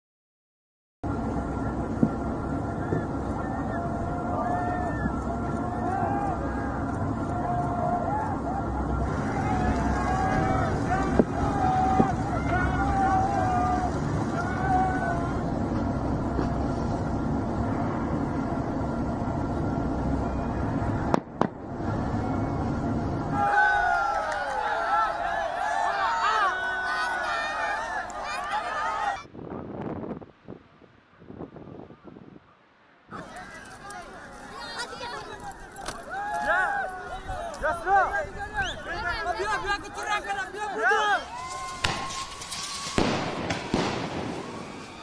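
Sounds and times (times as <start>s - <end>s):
boat engines rumbling: 1.0s - 29.2s, 33.1s - 45.0s
people shouting and screaming: 2.6s - 15.8s, 23.2s - 29.3s, 33.1s - 45.0s
sharp cracks: 41.4s - 45.0s.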